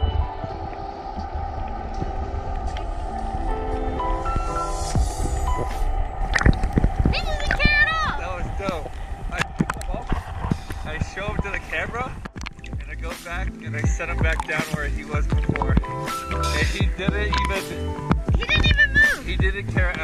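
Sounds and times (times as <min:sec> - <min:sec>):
gliding vocal-like line: 0:00.0 - 0:11.6
background music with held notes: 0:11.5 - 0:20.0.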